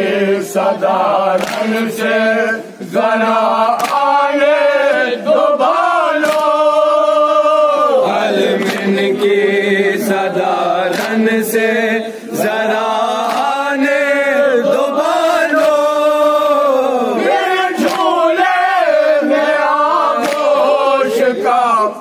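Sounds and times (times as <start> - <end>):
men chanting a lament: 0.0 - 22.0
chest-beating slaps: 1.4 - 1.9, 3.7 - 4.2, 6.2 - 6.7, 8.5 - 9.1, 10.9 - 11.3, 13.2 - 13.6, 15.6 - 15.9, 17.8 - 18.2, 20.2 - 20.7.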